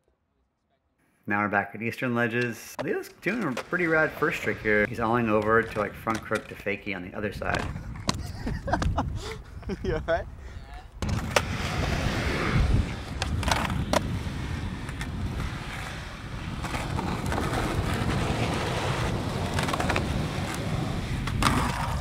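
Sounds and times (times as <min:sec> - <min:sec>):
skateboard wheels rolling on concrete: 0:02.2 - 0:22.0
skateboard clacks: 0:16.5 - 0:22.0.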